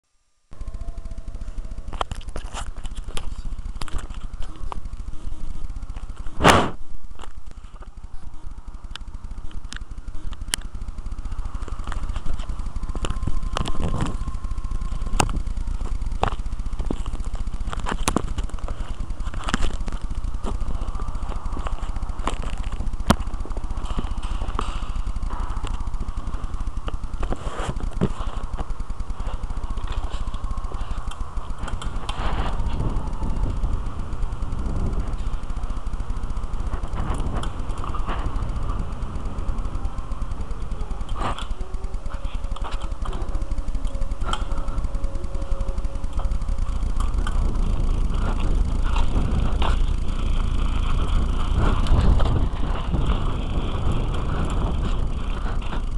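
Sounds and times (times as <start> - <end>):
faint steady whine: 0.0 - 55.9
low microphone rumble: 0.2 - 55.9
bike clicks and knocks: 0.6 - 55.9
sharp click: 5.9 - 7.9.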